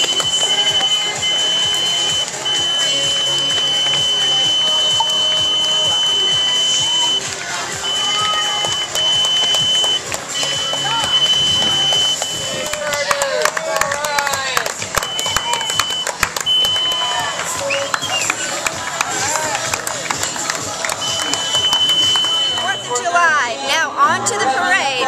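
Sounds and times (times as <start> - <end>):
high-pitched electronic beep: 0.0 - 12.6, 21.0 - 23.2
background music: 0.0 - 25.0
voices: 0.0 - 25.0.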